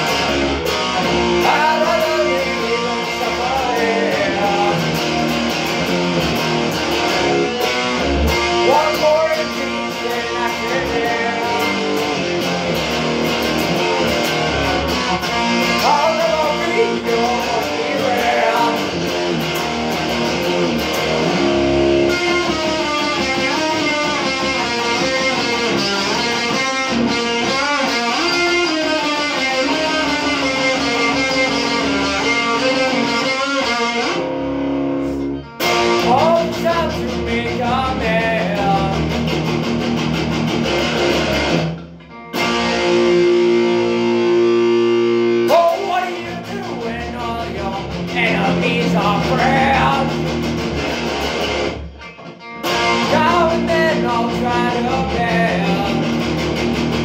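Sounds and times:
electric guitar playing: 0:00.0 - 0:57.0.

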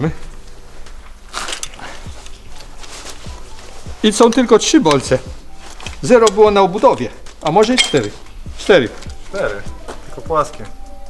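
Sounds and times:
background music: 0:00.0 - 0:11.0
low steady hum: 0:00.0 - 0:11.0.

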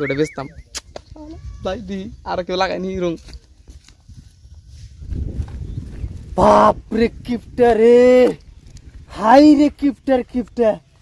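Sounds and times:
footsteps on dirt path: 0:02.9 - 0:06.5, 0:07.1 - 0:11.0.

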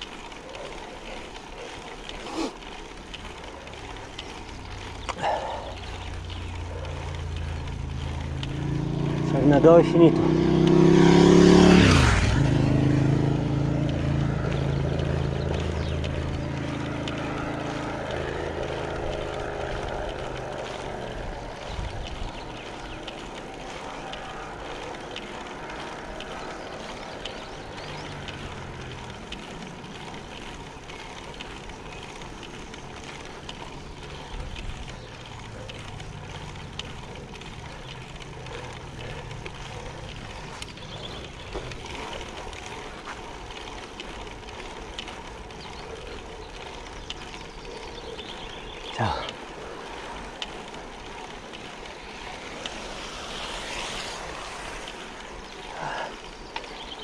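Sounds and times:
vehicle engines passing: 0:00.0 - 0:57.0
wind and road noise: 0:00.0 - 0:57.0.

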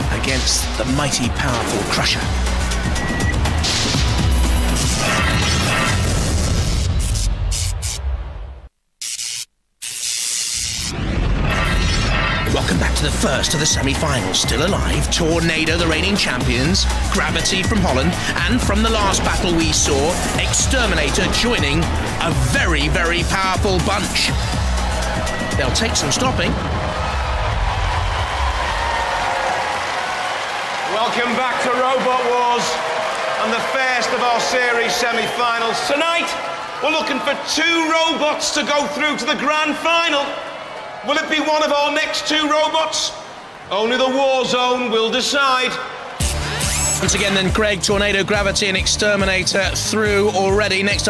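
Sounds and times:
audience cheering and applauding: 0:00.0 - 0:05.2, 0:12.6 - 0:48.8
hissing bursts: 0:09.0 - 0:11.0.

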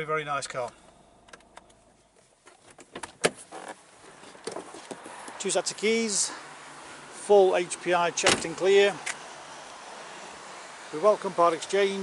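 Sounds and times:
car door clicks and knocks: 0:02.7 - 0:03.4.

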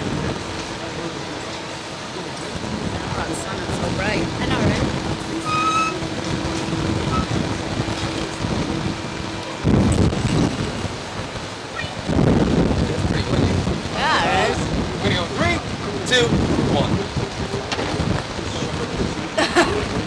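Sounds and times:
wind gusting against microphone: 0:00.0 - 0:20.0
person's voice: 0:12.9 - 0:20.0.

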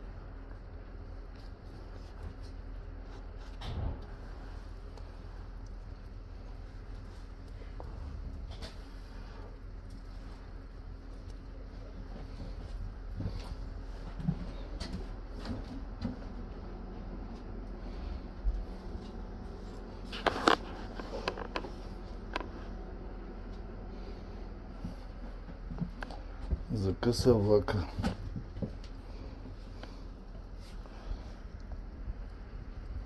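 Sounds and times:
train coach hum and rumble: 0:00.0 - 0:33.0.

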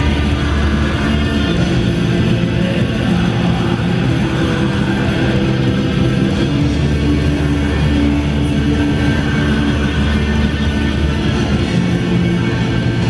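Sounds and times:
black metal band playing live: 0:00.0 - 0:13.0.

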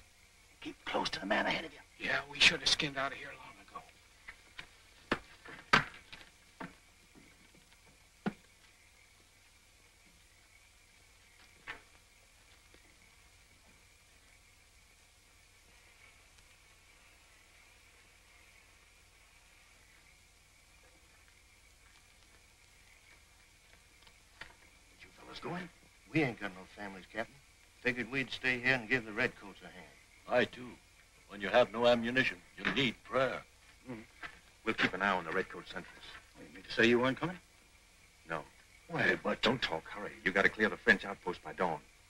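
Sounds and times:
old film soundtrack hiss: 0:00.0 - 0:42.0.

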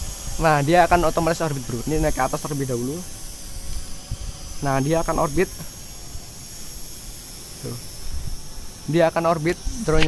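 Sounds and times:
drone motors whining: 0:00.0 - 0:10.0
wind rumble on microphone: 0:03.5 - 0:05.3, 0:08.0 - 0:08.6.

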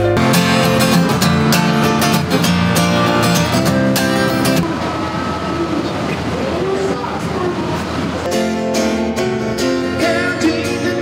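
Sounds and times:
rumbling background noise: 0:00.0 - 0:11.0
indistinct voices: 0:04.4 - 0:08.6.

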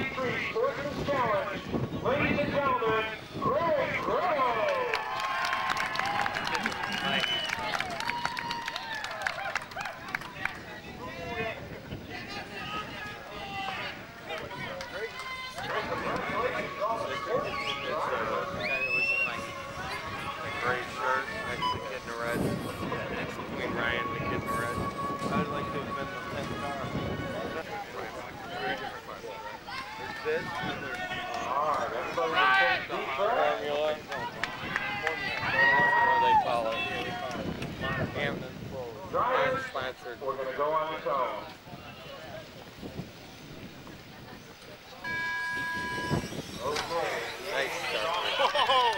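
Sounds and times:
people talking indistinctly: 0:00.0 - 0:04.9, 0:10.0 - 0:48.9
announcer over public address: 0:14.5 - 0:28.4, 0:45.0 - 0:48.2.

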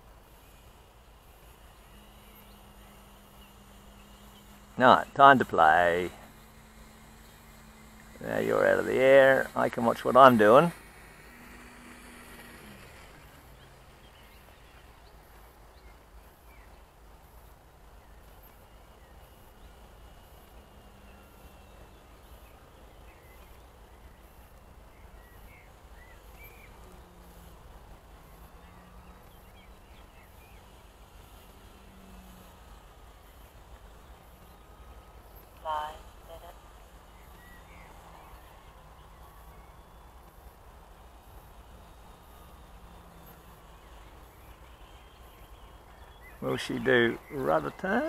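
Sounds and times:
distant model plane motor hum: 0:00.0 - 0:48.0
faint bird chirps: 0:00.3 - 0:48.0.

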